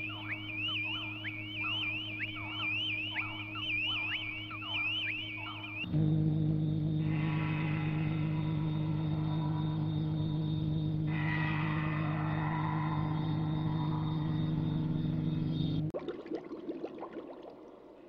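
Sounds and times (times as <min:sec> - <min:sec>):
electronic drone: 0:00.0 - 0:15.9.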